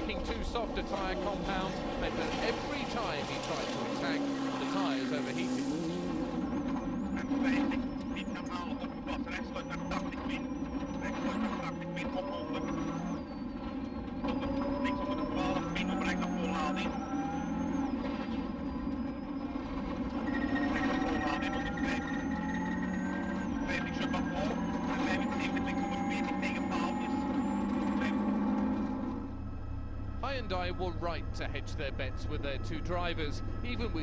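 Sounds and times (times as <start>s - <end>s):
rally car engine revving: 0.0s - 34.0s.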